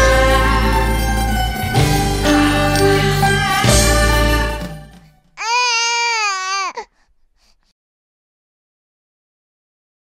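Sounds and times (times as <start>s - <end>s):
newborn baby crying: 5.4s - 7.1s.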